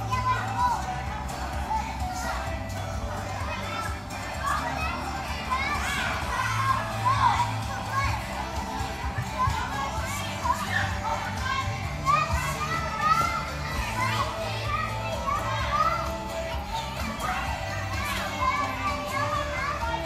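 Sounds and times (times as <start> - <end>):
background music: 0.0 - 20.0
children calling and chattering: 0.0 - 20.0.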